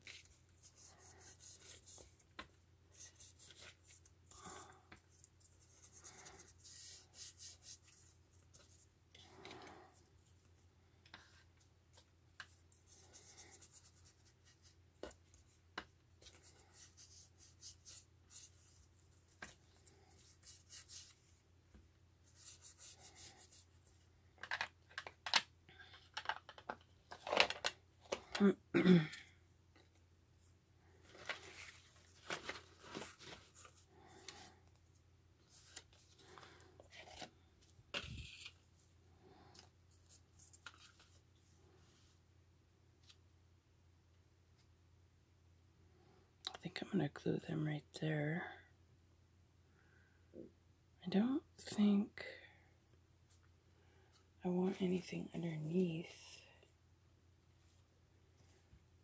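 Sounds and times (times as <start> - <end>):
scratchy brushing strokes: 0.0 - 2.3, 2.9 - 8.9, 16.2 - 21.4, 22.2 - 23.9.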